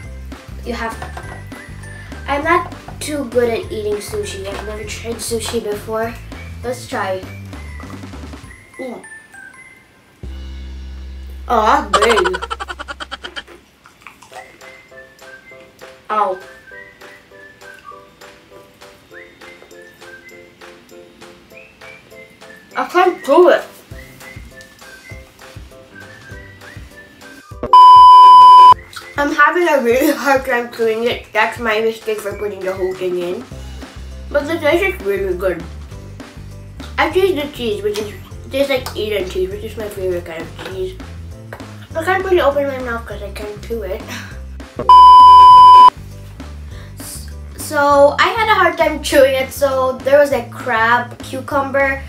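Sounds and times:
background music: 0.0 - 52.0
whistled melody: 1.0 - 2.3, 6.1 - 10.2, 14.4 - 29.3, 44.8 - 45.9
electronic bleep: 27.7 - 28.8, 44.8 - 45.9
repeated chords: 44.8 - 45.9.

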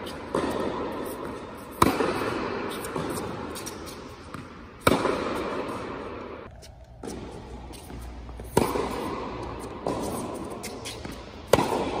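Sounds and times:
racket hitting tennis ball: 0.0 - 12.0.

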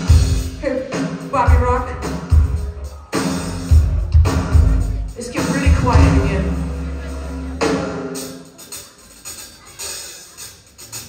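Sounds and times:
drum and cymbal hits: 0.0 - 11.0.

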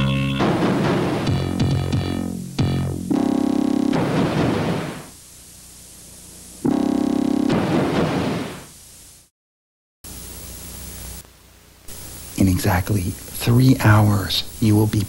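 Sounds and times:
tape hiss: 0.0 - 9.3, 10.1 - 15.0.

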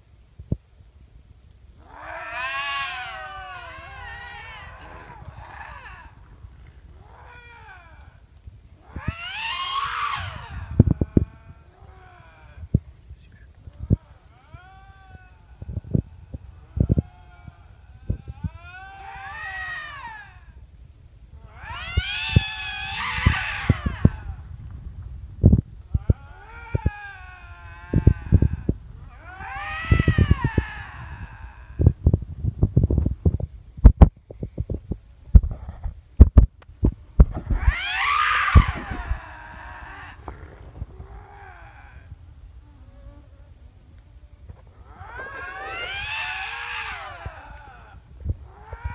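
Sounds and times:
lynx yowling: 1.8 - 20.7, 21.3 - 24.7, 25.9 - 32.1, 37.3 - 43.3, 44.5 - 48.9.

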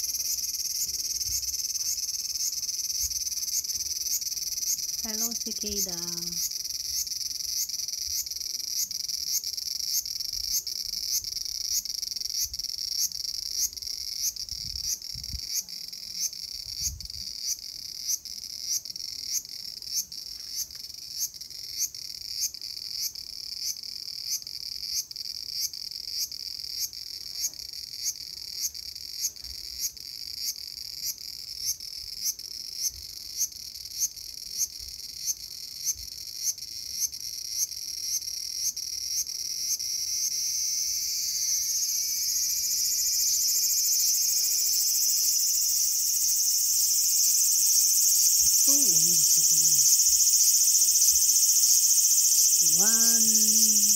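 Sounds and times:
cicada buzzing: 0.0 - 15.6, 33.4 - 53.9.

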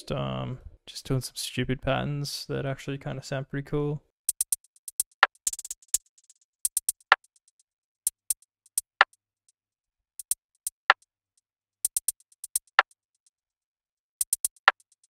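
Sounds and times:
drum machine hi-hat ticks: 4.3 - 7.4, 8.1 - 9.2, 10.2 - 11.0, 11.8 - 13.0, 14.2 - 15.0.

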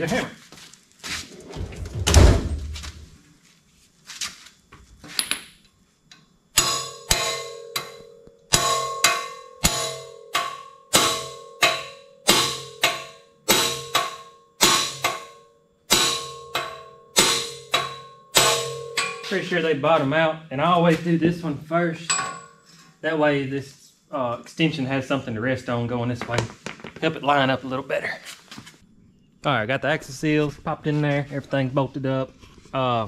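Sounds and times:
hammer striking metal socket: 6.6 - 19.4.

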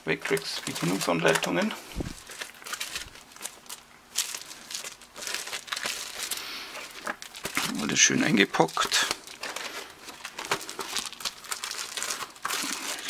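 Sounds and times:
plastic sheets crinkling: 0.0 - 13.0.

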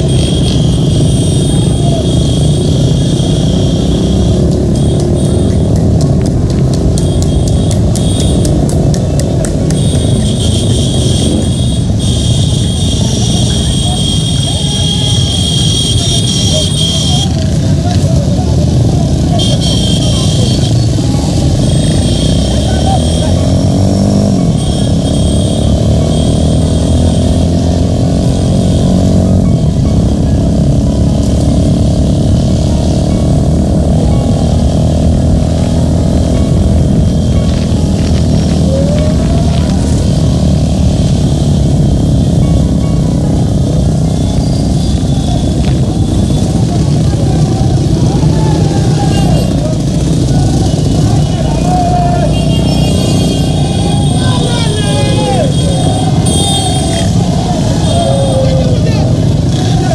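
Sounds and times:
motorcycle engines running: 0.0 - 59.9
voices: 0.0 - 59.9.

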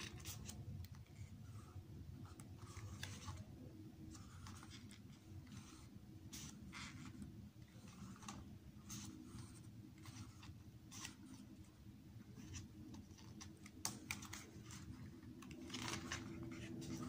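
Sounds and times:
paper pages turning: 0.0 - 17.0.

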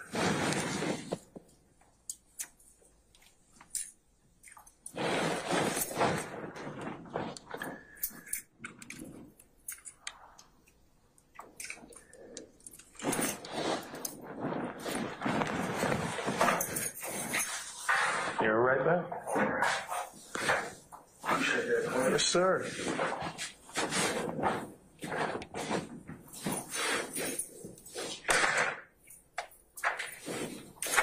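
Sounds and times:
rustling noise: 0.0 - 31.0.

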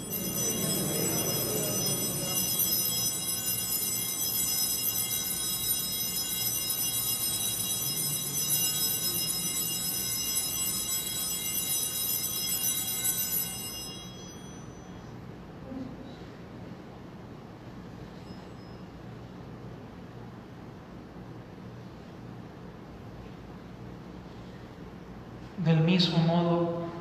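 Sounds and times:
altar bells ringing: 0.0 - 15.4.

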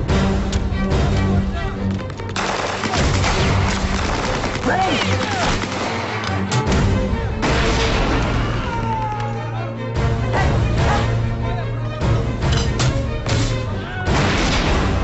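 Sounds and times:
rapid gunfire: 2.4 - 6.5.

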